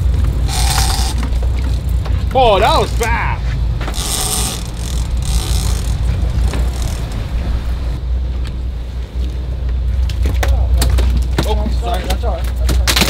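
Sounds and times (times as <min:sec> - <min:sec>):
boat engine rumble: 0:00.0 - 0:12.4
wind: 0:00.0 - 0:13.0
sharp clicks: 0:03.8 - 0:07.3.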